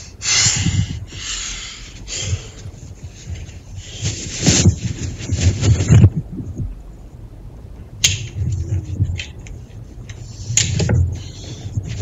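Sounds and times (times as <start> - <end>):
muffled handling thuds and rustling: 0.6 - 12.0.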